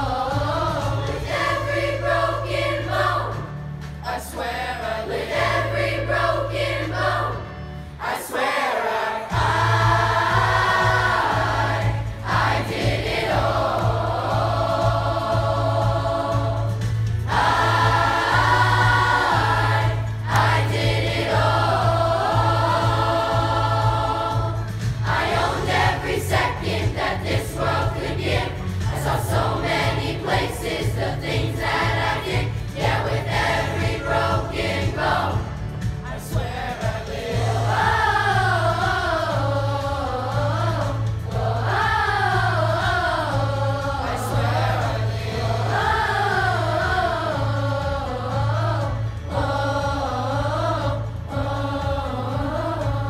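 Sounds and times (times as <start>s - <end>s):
school chorus singing in parts: 0.0s - 53.0s.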